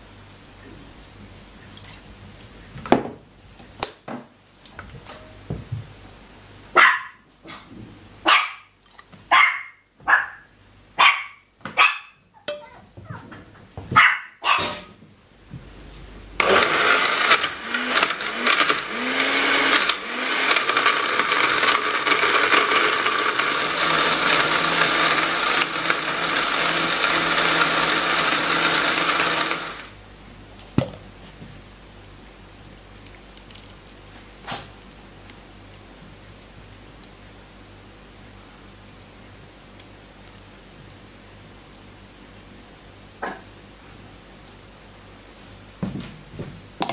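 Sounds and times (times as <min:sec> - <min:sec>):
dog barking: 0:06.8 - 0:07.2, 0:08.2 - 0:08.7, 0:09.3 - 0:12.2, 0:13.9 - 0:14.8
blender running: 0:16.4 - 0:30.0.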